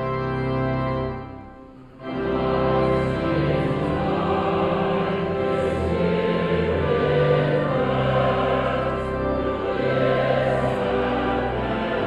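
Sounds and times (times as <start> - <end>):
choir singing chords: 0.0 - 12.0.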